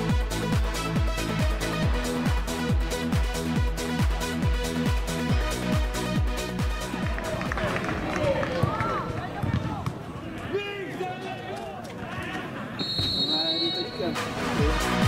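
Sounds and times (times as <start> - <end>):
electronic dance music: 0.0 - 7.2, 13.4 - 15.0
referee whistle blast: 12.8 - 14.4.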